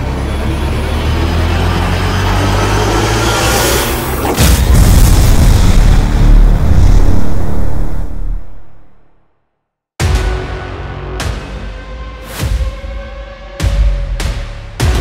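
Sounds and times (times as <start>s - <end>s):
heavy boom hit: 4.4s - 9.1s
deep rumble: 4.4s - 9.2s
music: 10.0s - 15.0s.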